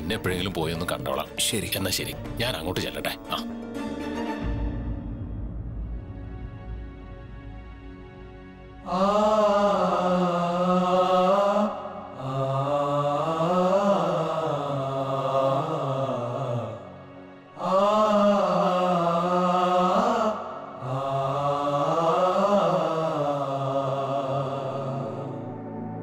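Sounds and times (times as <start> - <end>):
chant-like vocal line: 0.0 - 3.5, 8.5 - 26.0.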